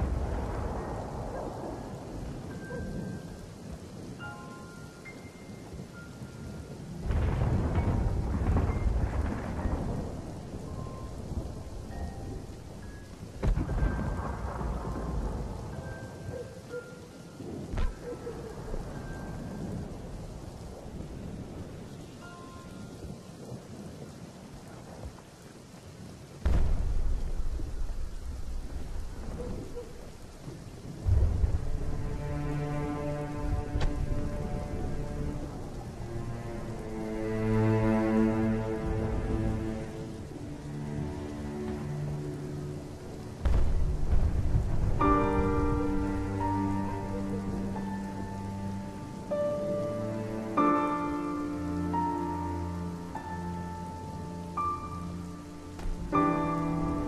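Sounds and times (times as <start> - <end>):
thunder rolling: 0.0 - 4.1, 5.7 - 16.4, 26.0 - 50.0
steady rain: 0.0 - 57.0
sharp thunder crack: 7.0 - 12.4, 13.3 - 15.6, 26.4 - 30.2, 30.8 - 32.5, 43.4 - 47.1.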